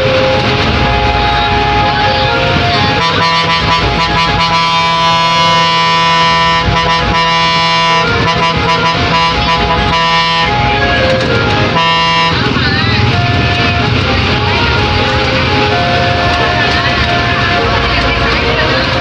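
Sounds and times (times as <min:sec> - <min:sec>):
bus air horn blasts: 0:00.0 - 0:19.0
bus engine running: 0:00.0 - 0:19.0
music with singing voice: 0:06.9 - 0:19.0.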